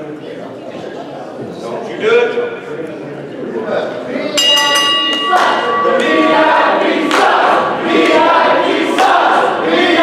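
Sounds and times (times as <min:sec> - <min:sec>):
crowd chanting in unison: 0:05.2 - 0:10.0.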